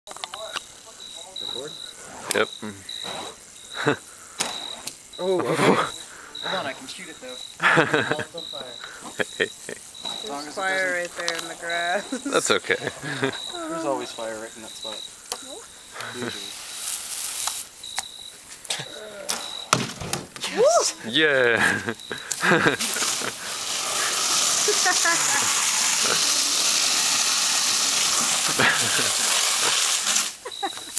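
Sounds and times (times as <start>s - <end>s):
crickets trilling: 0.1s - 30.9s
fire burning with loud hiss: 0.1s - 30.9s.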